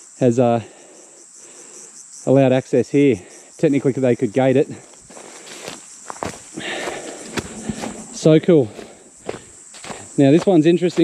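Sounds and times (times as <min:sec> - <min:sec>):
high insect drone: 0:00.0 - 0:11.0
footsteps on dry leaves: 0:05.0 - 0:11.0.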